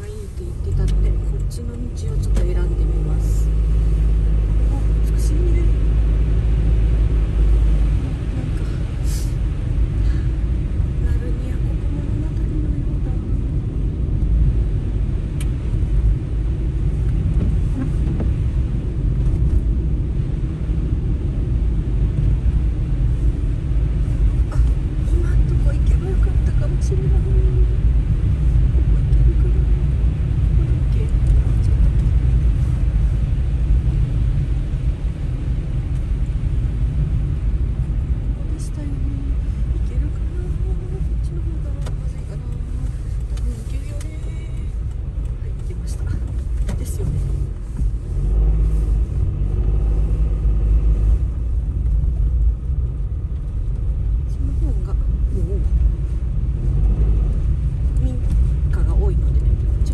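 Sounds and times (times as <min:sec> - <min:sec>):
car driving on wet road: 0:00.0 - 0:59.9.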